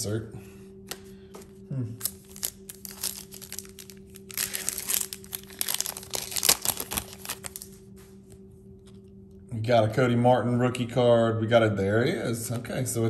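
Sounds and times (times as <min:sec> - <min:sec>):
wrapper crinkling and tearing: 0:02.0 - 0:07.9.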